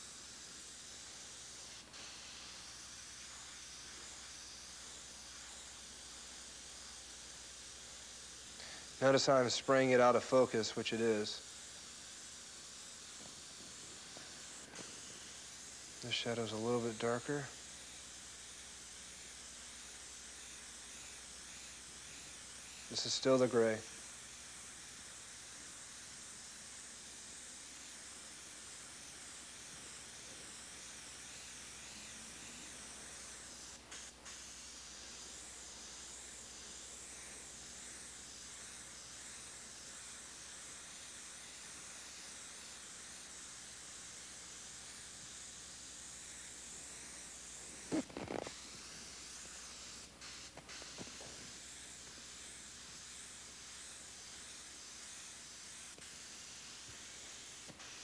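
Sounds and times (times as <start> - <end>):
airbrush spraying hiss: 0.0 - 58.0.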